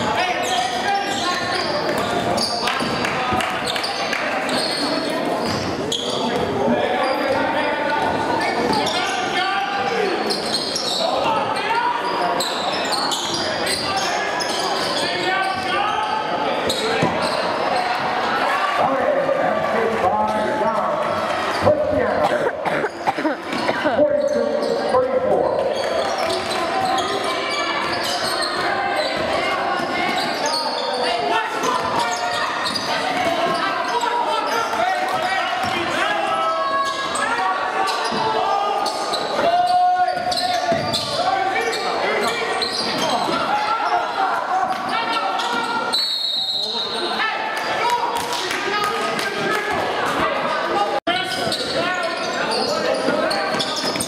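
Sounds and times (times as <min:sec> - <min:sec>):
indistinct crowd voices: 0:00.0 - 0:54.0.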